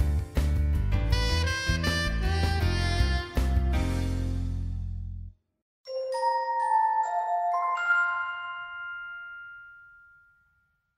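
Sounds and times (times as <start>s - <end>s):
bell-like music chord: 5.9s - 10.9s.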